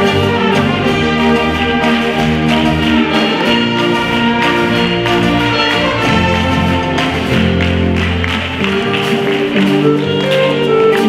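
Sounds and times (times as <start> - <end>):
concert band playing chords: 0.0 - 11.0.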